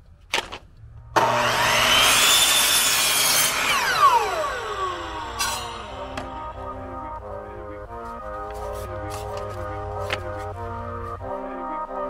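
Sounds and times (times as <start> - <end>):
saw blade winding down: 1.2 - 6.8
miter saw cutting wood: 1.2 - 7.2.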